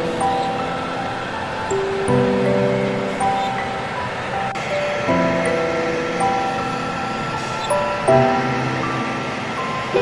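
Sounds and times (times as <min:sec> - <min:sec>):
music with sustained chords: 0:00.0 - 0:10.0.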